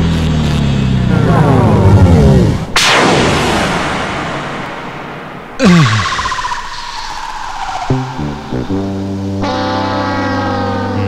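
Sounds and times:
high screeching tone sliding down: 5.6s - 11.0s.

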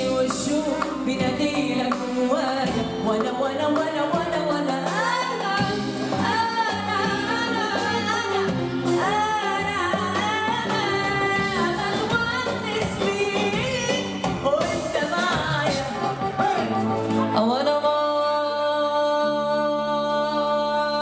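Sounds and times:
woman singing into a microphone: 0.0s - 16.2s, 17.2s - 21.0s
band with keyboard bass and drums: 0.0s - 18.4s.

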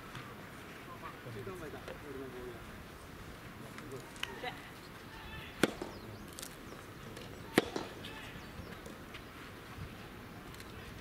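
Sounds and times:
racket striking a ball: 5.6s - 6.0s, 7.5s - 8.0s.

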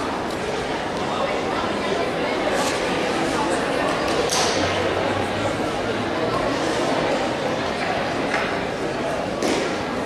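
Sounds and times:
chatter of spectators in a hall: 0.0s - 10.0s.

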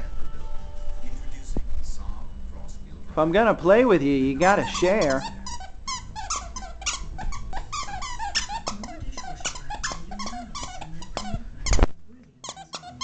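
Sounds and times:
dog chewing toy: 4.4s - 13.0s
dog toy squeaking: 4.4s - 13.0s.

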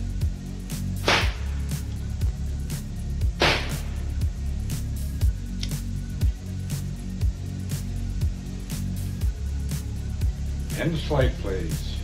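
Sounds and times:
electronic beat music: 0.0s - 12.0s
loud sharp crack: 1.0s - 1.6s, 3.4s - 4.0s.

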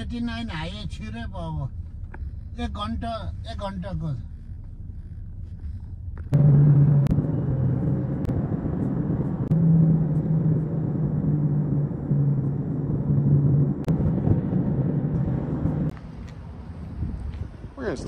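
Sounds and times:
car road and engine rumble: 0.0s - 18.0s.

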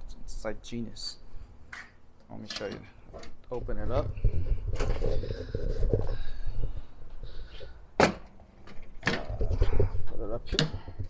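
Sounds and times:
rubbing and handling noise: 3.0s - 7.9s.

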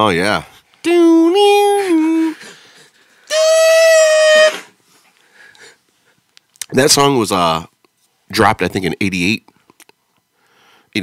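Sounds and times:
high reedy held note: 3.3s - 4.7s.

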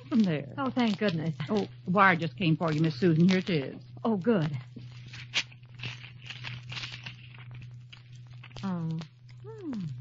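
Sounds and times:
low hum: 0.0s - 10.0s
paper tearing and rustling: 4.8s - 8.7s.

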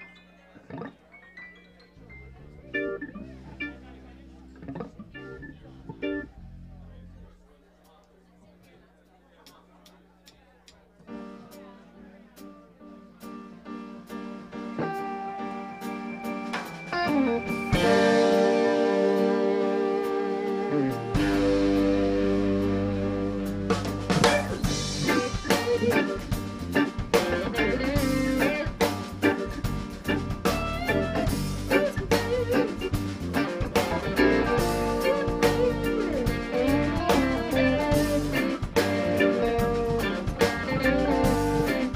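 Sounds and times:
drum kit: 13.2s - 41.9s
electric guitar: 14.7s - 41.9s
deep bass line: 17.1s - 41.9s.

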